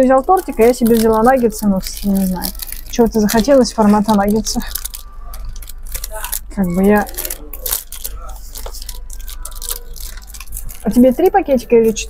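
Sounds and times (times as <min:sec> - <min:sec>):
faint background voices: 0:00.0 - 0:12.0
steady low hum: 0:00.0 - 0:12.0.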